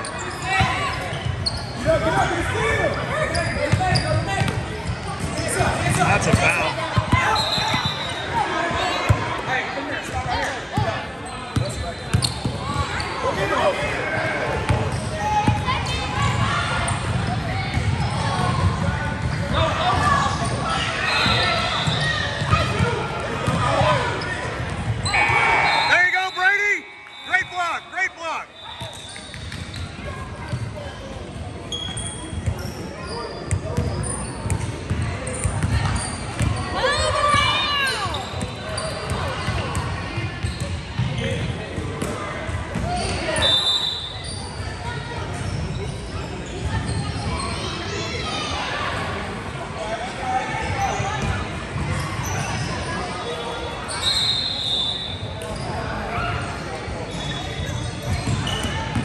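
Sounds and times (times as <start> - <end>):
shoe squeaks: 0.0 - 2.0, 3.1 - 5.1, 7.2 - 8.4, 11.3 - 13.2, 20.4 - 22.5, 24.2 - 30.8, 31.7 - 34.6, 35.3 - 36.9, 37.6 - 39.3, 40.4 - 40.8, 52.0 - 56.0, 57.0 - 59.0.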